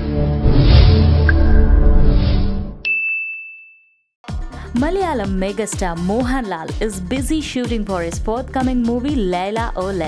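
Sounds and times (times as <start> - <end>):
electronic ding: 2.8 - 4.0.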